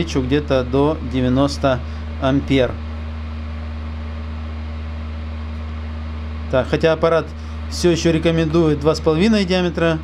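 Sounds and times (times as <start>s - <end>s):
cooling fan running: 0.0s - 10.0s
welder humming and hissing: 0.0s - 10.0s.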